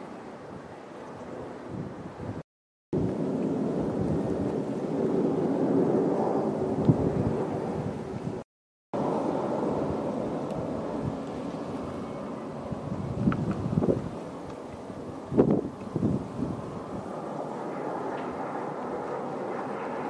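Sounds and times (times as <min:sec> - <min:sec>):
aircraft engines rumbling overhead: 0:03.0 - 0:08.4, 0:09.0 - 0:20.0.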